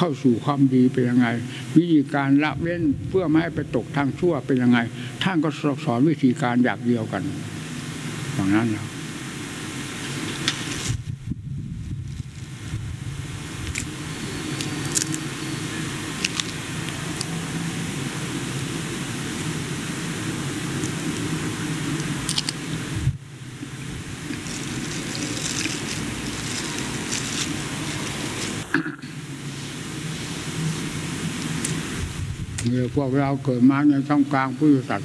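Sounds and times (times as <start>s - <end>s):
low hum and hiss: 0.0s - 35.0s.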